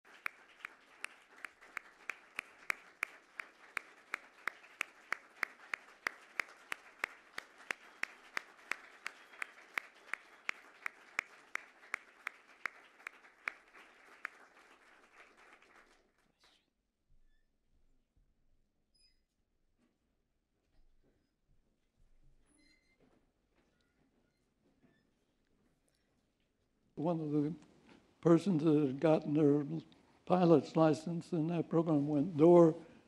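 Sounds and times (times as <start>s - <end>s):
audience applauding: 0.0s - 16.5s
close steady clapping: 0.0s - 16.6s.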